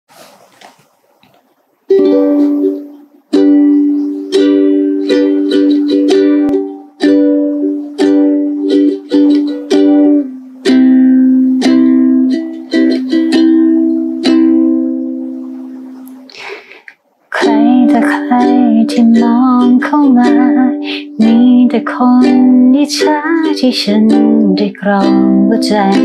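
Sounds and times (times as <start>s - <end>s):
ukulele strumming chords: 1.9s - 16.5s, 17.3s - 26.0s.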